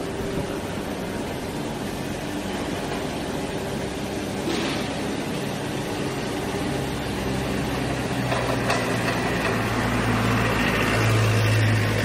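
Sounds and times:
factory machinery noise: 0.0s - 12.0s.

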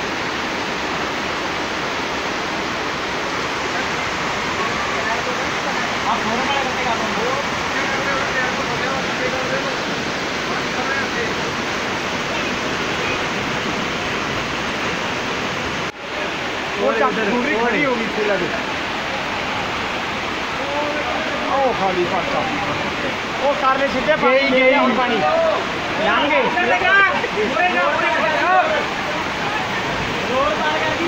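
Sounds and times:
floodwater rushing along street: 0.0s - 31.0s
heavy rain pouring: 0.0s - 31.0s.

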